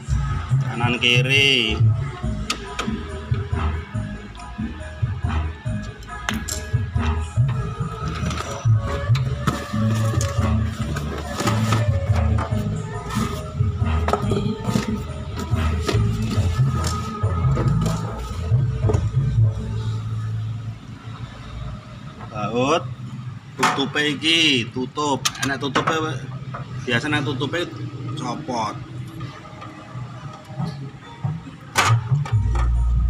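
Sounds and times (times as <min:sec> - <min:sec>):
music with heavy bass line: 0:00.0 - 0:20.5.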